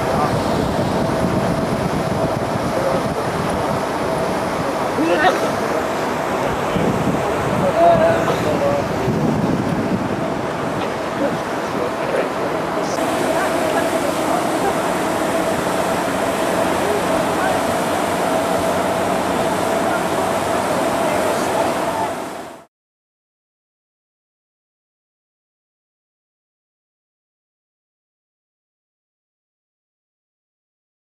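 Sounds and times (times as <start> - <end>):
wind on microphone: 0.0 - 22.6.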